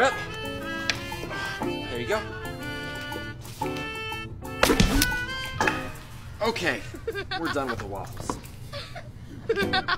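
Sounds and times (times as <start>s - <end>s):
background music: 0.0s - 9.9s
wet smack of batter splattering: 4.6s - 5.8s.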